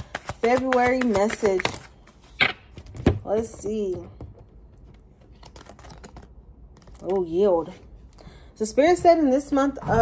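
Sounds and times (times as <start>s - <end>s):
cards being shuffled: 0.0s - 3.8s, 4.7s - 7.5s.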